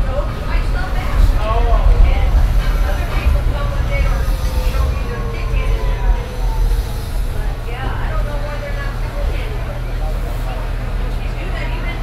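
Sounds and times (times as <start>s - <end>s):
bus low rumble: 0.0s - 12.0s
passengers' voices: 0.0s - 12.0s.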